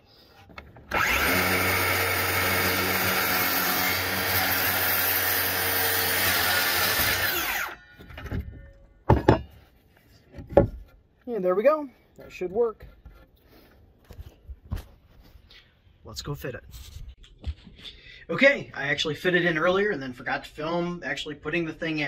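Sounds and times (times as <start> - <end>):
circular saw cutting wood: 0.9 - 7.8.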